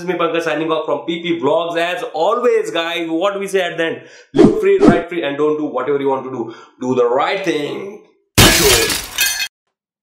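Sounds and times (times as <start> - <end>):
glass breaking: 8.4 - 9.5.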